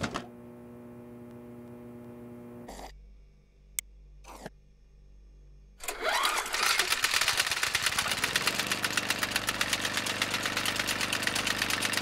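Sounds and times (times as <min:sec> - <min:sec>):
low electrical hum: 0:00.0 - 0:05.8.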